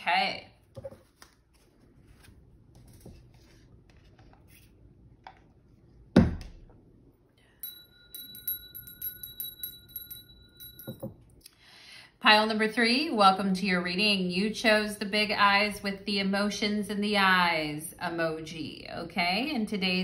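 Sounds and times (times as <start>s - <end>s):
cards handled on a table: 0.6s - 5.5s
small hand bell ringing: 7.5s - 11.2s.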